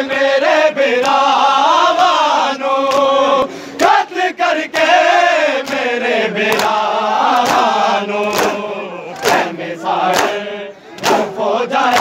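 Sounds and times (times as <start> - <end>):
men chanting a lament: 0.0 - 12.0
hands slapping chests: 1.0 - 1.2, 2.9 - 3.1, 6.5 - 10.4, 11.0 - 12.0.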